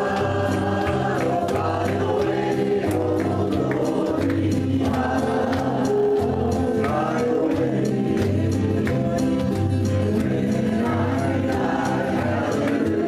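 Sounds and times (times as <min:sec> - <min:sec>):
acoustic and electric guitars: 0:00.0 - 0:13.0
group singing in harmony: 0:00.0 - 0:13.0.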